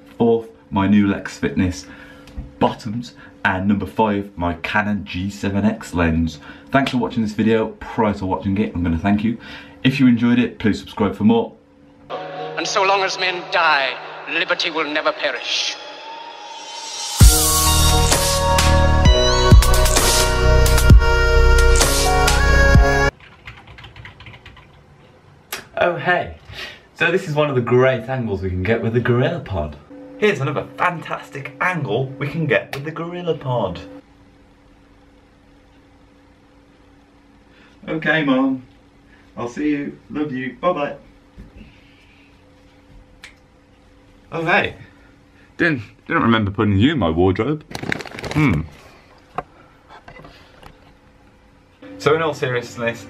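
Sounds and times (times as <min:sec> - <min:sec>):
typing on keyboard: 0:23.2 - 0:24.8.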